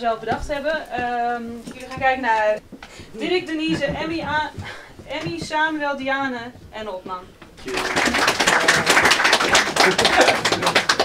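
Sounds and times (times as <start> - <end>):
audience applauding: 7.6 - 11.0.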